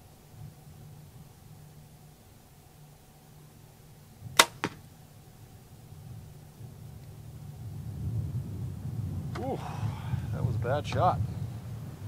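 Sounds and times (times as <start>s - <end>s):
bow string crack: 4.4s - 5.0s.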